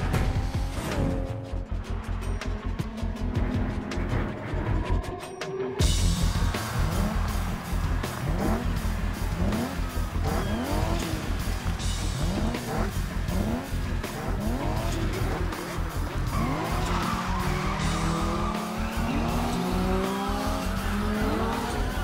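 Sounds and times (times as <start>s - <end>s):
music with heavy bass beat: 0.0s - 22.0s
race car engines revving: 6.0s - 22.0s.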